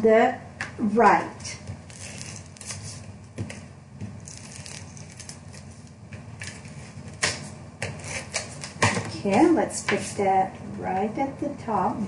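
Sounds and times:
cardstock rustling: 0:04.2 - 0:09.4.

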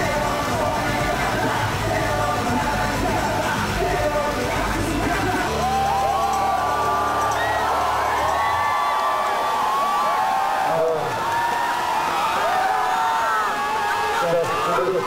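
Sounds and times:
crowd whooping and cheering: 0:05.0 - 0:15.0.

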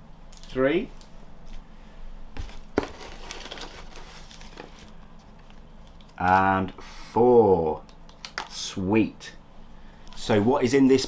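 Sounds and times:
plastic rustling and crinkling: 0:02.4 - 0:06.4.

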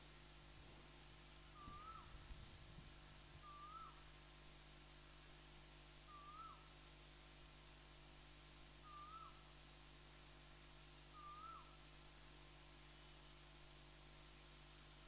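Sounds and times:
faint low hum: 0:00.0 - 0:15.0
bird calling: 0:01.6 - 0:02.2, 0:03.4 - 0:04.0, 0:06.1 - 0:06.7, 0:08.8 - 0:09.4, 0:11.2 - 0:11.8.

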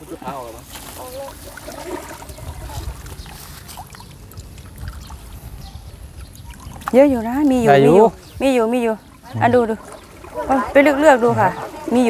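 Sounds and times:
water trickling and dripping from net: 0:00.0 - 0:12.0.

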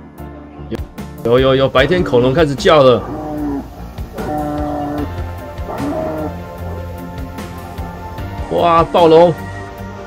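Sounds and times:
background music: 0:00.0 - 0:10.0
dinosaur roars over loudspeakers: 0:02.8 - 0:06.5.

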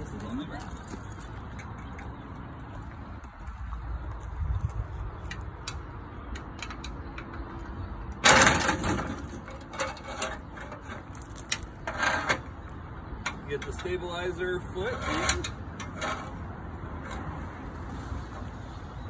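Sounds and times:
loud metal clattering clank: 0:08.2 - 0:10.9
metal step ladder clicks and knocks: 0:08.2 - 0:12.4.

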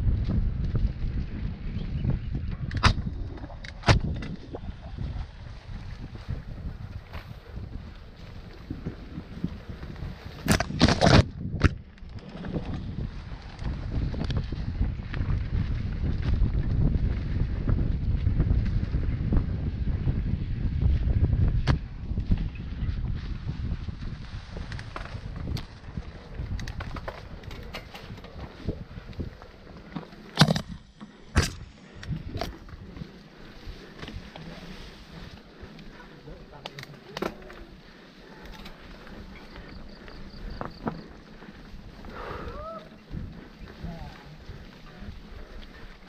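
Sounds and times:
bike knocking and rattling: 0:00.0 - 0:46.0
wind and trail vibration rumble: 0:00.0 - 0:46.0.

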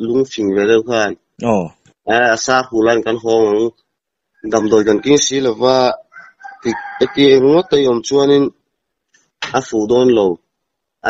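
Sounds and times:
man imitating rooster crowing: 0:04.4 - 0:08.0.

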